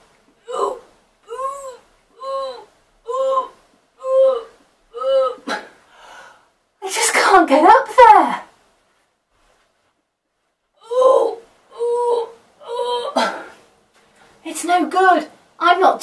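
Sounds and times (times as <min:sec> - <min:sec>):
woman's straining cry: 0:00.4 - 0:05.7, 0:10.8 - 0:13.5.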